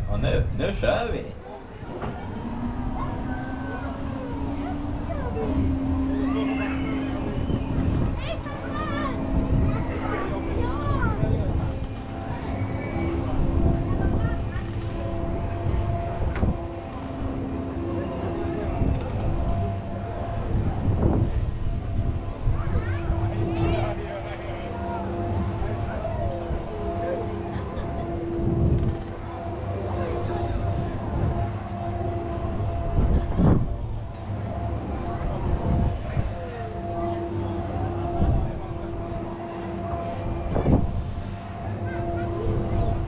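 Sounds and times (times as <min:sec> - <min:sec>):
ride machine humming: 0:00.0 - 0:43.0
wind rushing: 0:01.8 - 0:16.8, 0:18.4 - 0:24.0.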